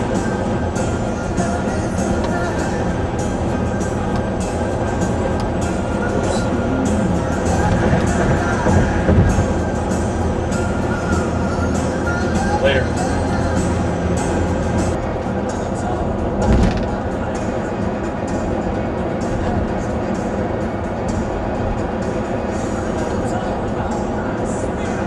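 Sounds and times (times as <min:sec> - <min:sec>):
car road and engine noise: 0:00.0 - 0:25.0
music with singing on car stereo: 0:00.0 - 0:25.0.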